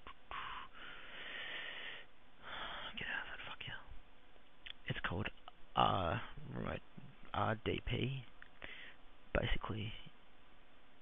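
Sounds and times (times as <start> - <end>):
man whispering: 2.7 - 4.0, 4.8 - 8.3, 9.3 - 10.2.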